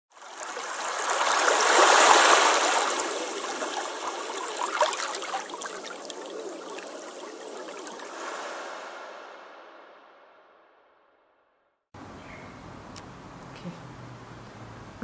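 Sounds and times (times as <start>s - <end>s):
running water: 0.1s - 9.1s
faint bubbling gurgles: 0.2s - 8.4s.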